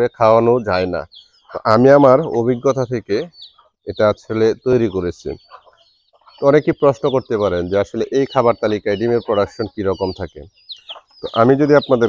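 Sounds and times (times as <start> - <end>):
chicks peeping: 0.0 - 12.0
hens and rooster clucking: 0.4 - 12.0.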